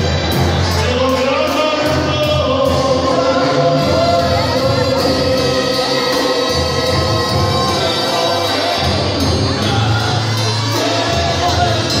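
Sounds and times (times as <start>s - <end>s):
clarinets and trombones: 0.0s - 12.0s
man singing: 0.6s - 12.0s.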